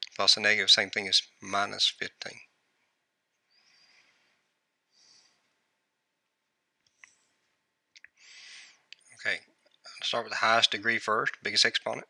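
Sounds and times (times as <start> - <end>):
soft breath drawn in: 3.4 - 5.7, 8.2 - 8.9.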